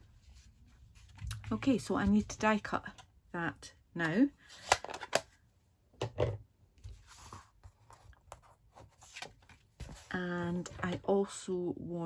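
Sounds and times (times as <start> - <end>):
paper rustling and scraping: 6.8 - 10.2.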